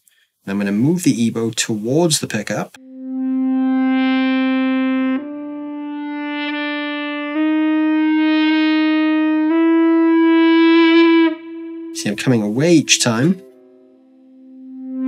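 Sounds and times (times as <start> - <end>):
sustained electric guitar notes: 2.8 - 15.0.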